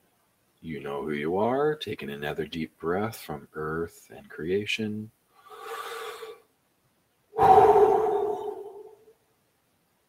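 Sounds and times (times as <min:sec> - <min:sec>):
man breathing close to microphone: 0:05.4 - 0:06.4, 0:07.4 - 0:09.0.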